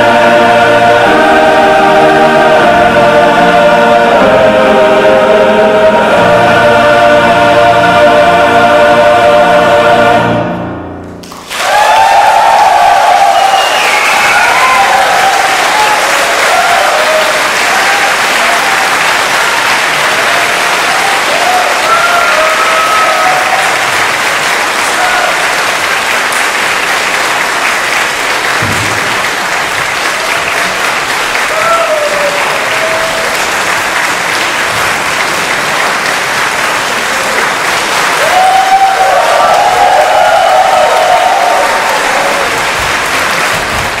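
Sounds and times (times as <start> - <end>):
large audience applauding: 11.2 - 44.0
cheers and whoops: 11.5 - 23.8, 31.4 - 33.4, 38.1 - 42.7.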